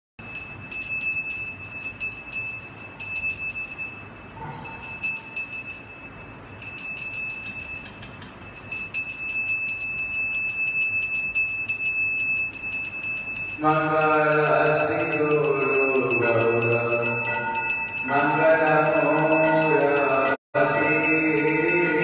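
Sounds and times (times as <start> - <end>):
hand bell ringing rapidly: 0.2 - 22.0.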